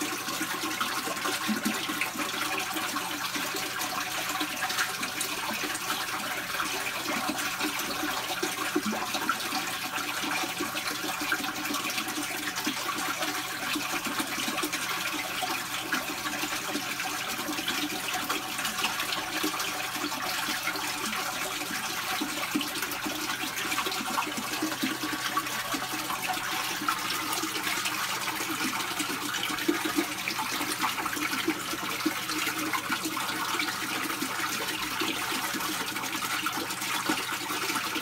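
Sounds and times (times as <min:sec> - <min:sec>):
running water rushing: 0:00.0 - 0:38.0.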